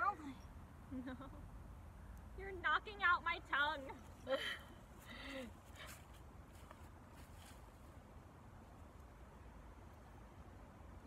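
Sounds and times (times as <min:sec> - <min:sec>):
faint low outdoor rumble: 0:00.0 - 0:11.0.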